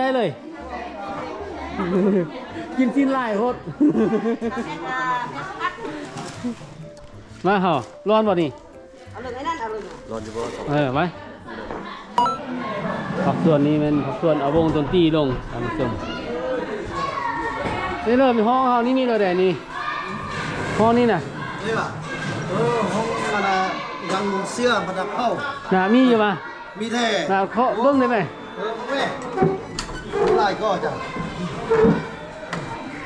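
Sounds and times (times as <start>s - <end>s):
children and adults talking: 0.0s - 33.0s.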